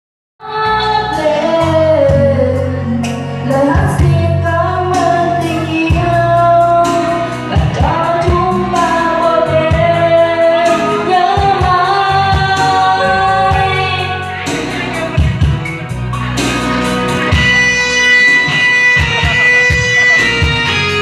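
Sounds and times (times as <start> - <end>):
woman singing slow melody: 0.4 - 14.4
instrumental backing with beat: 1.1 - 21.0.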